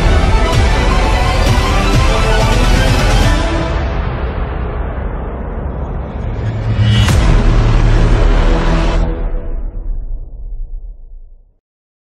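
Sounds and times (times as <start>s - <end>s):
deep cinematic rumble: 3.6s - 11.5s.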